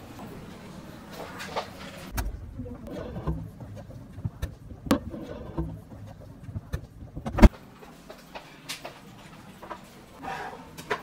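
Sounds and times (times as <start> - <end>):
low rumble: 2.1 - 7.5
dishes knocking and clicking: 2.2 - 7.5.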